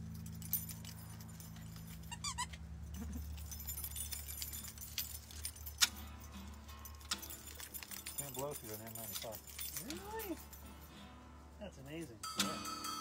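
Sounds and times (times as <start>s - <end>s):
acoustic guitar and double bass: 0.0s - 13.0s.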